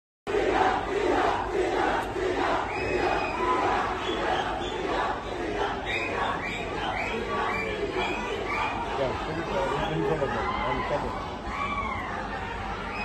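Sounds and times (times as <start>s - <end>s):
crowd shouting together: 0.3s - 13.0s.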